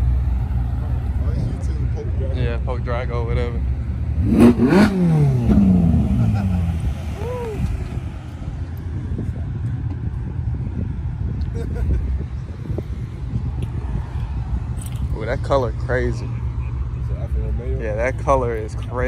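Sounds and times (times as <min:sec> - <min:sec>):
car engine revving: 0:00.0 - 0:08.2.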